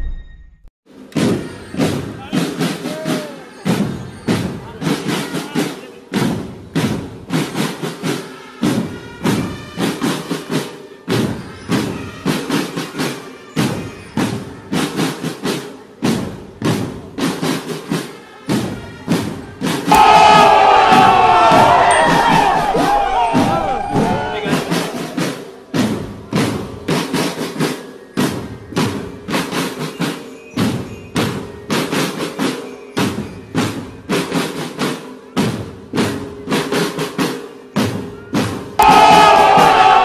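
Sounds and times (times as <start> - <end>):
marching drum line: 1.0 - 40.0.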